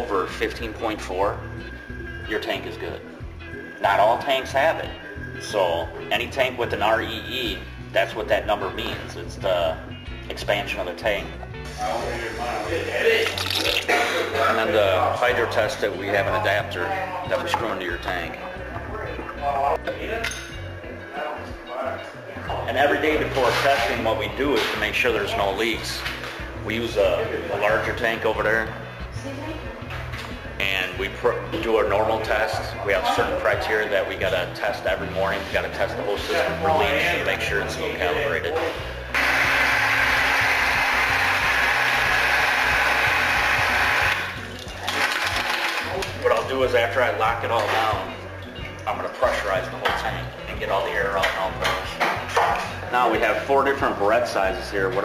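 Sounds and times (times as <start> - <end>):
background music: 0.0 - 55.0.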